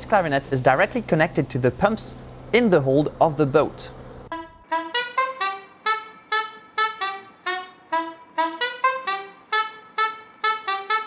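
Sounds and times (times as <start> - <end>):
staccato saxophone-like tune: 4.3 - 11.0.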